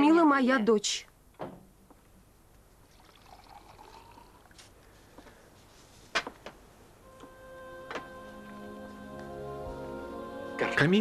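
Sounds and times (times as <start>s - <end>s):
liquid pouring into glass: 2.9s - 4.6s.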